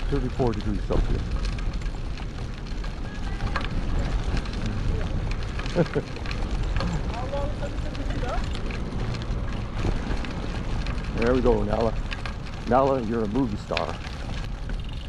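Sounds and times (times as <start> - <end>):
trike rolling on paved street: 0.0 - 15.0.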